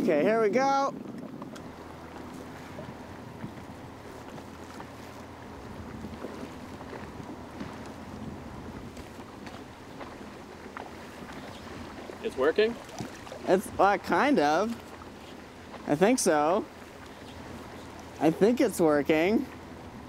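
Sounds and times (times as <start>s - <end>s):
wind on microphone: 0.0s - 15.9s
faint motor hum: 0.0s - 20.0s
water along boat hull: 0.0s - 20.0s.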